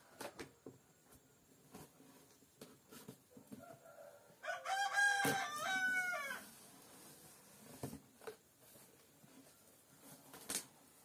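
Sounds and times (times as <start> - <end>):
rooster crowing: 3.6 - 6.5.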